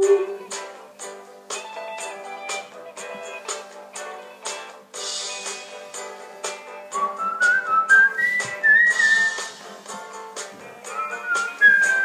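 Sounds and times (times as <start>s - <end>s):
backing track with guitar and beat: 0.0s - 12.0s
man whistling a melody: 6.9s - 9.6s, 10.9s - 12.0s.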